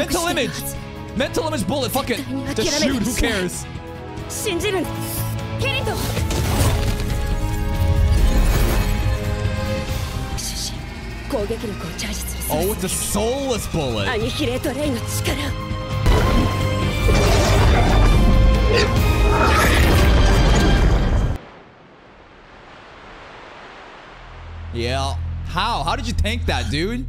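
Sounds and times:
soundtrack music: 0.0s - 21.4s
character voice speaking: 2.3s - 3.5s
steady rushing air noise: 21.4s - 24.8s.

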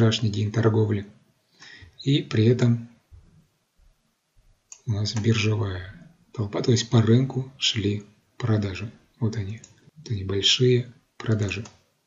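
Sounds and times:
man speaking: 0.0s - 1.2s, 2.0s - 3.0s, 4.8s - 11.8s
faint low clicks: 3.1s - 5.4s.

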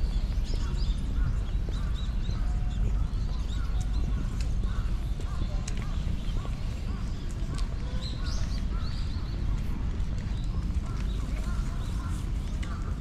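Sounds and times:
birds chirping and calling: 0.0s - 13.0s
steady low rumble: 0.0s - 13.0s.

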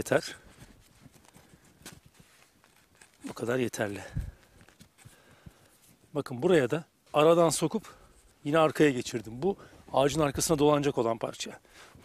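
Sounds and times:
rope handling ticks and rustles: 0.0s - 6.3s.

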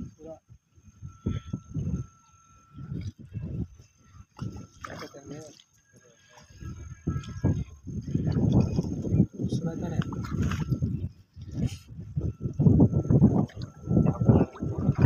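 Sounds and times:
people talking: 4.9s - 6.5s, 9.4s - 10.2s.

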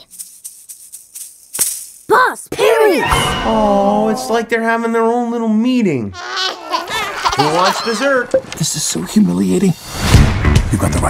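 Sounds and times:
toy rattle shaken: 0.0s - 2.2s.

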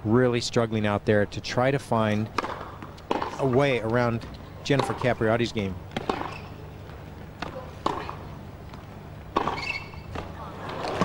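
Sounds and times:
tennis ball hitting rackets: 2.3s - 11.0s.

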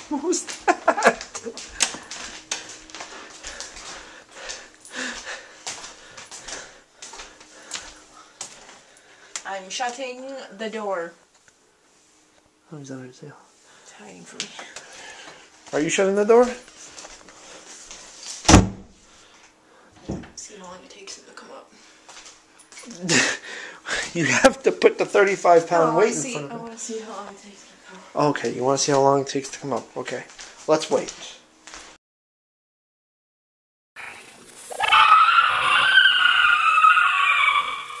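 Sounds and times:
door shutting: 18.4s - 19.0s
woman's high-pitched screech: 34.7s - 38.0s.

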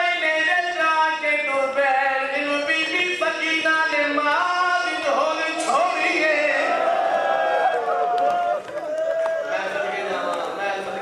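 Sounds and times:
chanted recitation over loudspeakers: 0.0s - 6.8s.

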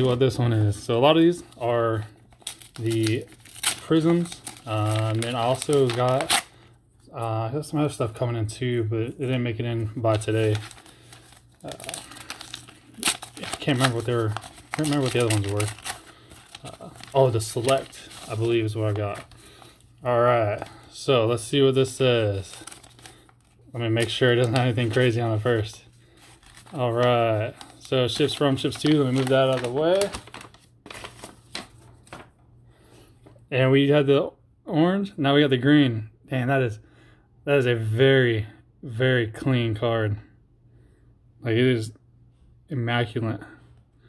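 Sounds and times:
paper envelope crinkling: 0.8s - 6.5s, 9.2s - 32.4s
card taps and paper rustles: 26.2s - 32.4s.

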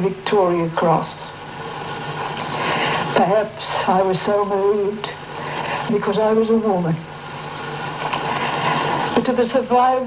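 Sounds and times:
recording hiss: 0.0s - 10.0s.

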